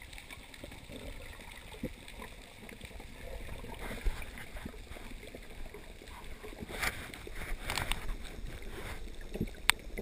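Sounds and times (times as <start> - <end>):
underwater bubbling: 0.0 - 10.0.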